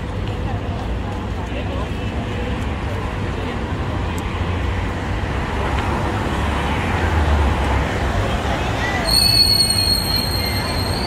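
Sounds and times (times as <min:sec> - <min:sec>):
faint voices of passers-by: 0:00.0 - 0:11.0
rumble of passing cars: 0:00.0 - 0:11.0.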